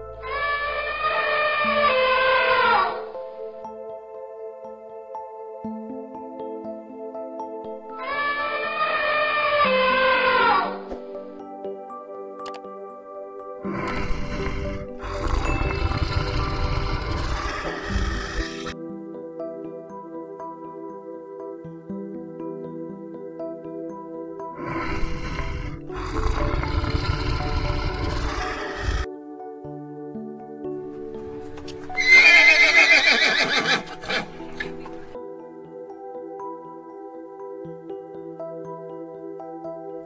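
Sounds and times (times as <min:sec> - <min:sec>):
background music: 0:00.0 - 0:40.0
horse whinnying: 0:08.0 - 0:10.9, 0:13.6 - 0:18.8, 0:31.9 - 0:35.2
lion roaring: 0:13.6 - 0:18.8, 0:24.6 - 0:29.1.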